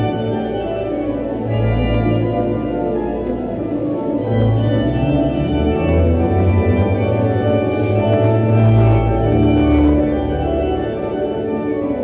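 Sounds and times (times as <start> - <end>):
pipe organ chords: 0.0 - 12.0.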